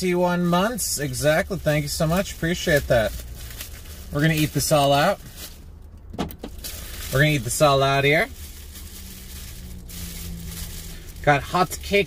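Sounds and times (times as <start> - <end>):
low steady hum: 0.0 - 12.0
plastic wrapping crinkling: 1.0 - 12.0.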